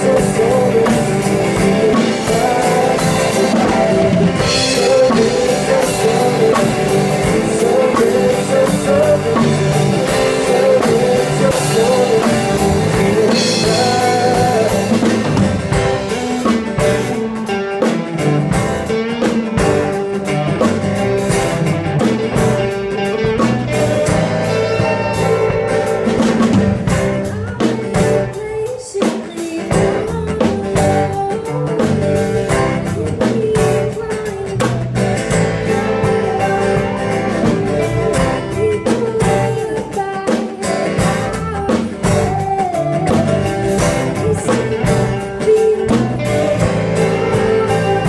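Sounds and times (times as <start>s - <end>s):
live band playing: 0.0s - 48.0s.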